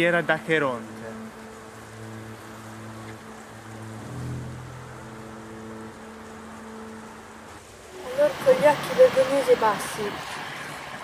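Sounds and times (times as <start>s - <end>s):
low droning background music: 0.0s - 11.0s
steady hiss: 0.0s - 11.0s.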